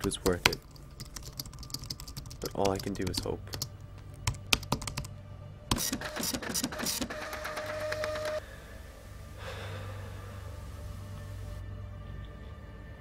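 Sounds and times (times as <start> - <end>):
typing on computer keyboard: 0.3 - 3.7, 4.3 - 5.1, 5.7 - 8.4
low hum: 8.1 - 13.0.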